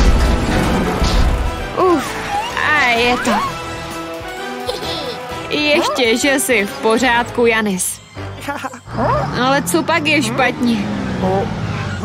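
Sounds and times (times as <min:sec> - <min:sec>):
crashing hit: 0:00.0 - 0:01.8
background music: 0:00.0 - 0:12.0.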